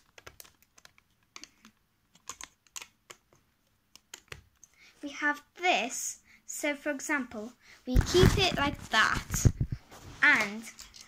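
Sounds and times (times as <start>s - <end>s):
plastic bricks clicking: 0.0s - 4.7s, 10.7s - 11.0s.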